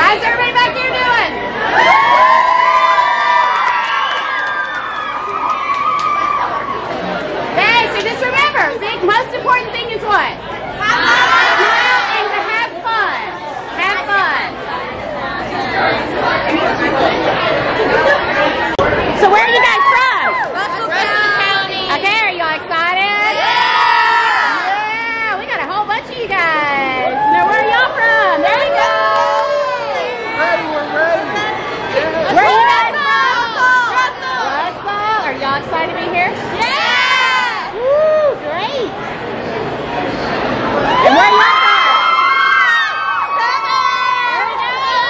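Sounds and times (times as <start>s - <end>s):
girls shouting and cheering: 0.0s - 6.9s, 10.8s - 14.4s, 19.2s - 22.2s, 23.0s - 30.7s, 32.3s - 35.3s, 36.6s - 38.9s, 40.8s - 45.0s
girls cheering and screaming: 1.6s - 6.9s, 19.4s - 20.8s, 36.6s - 38.4s, 40.8s - 45.0s.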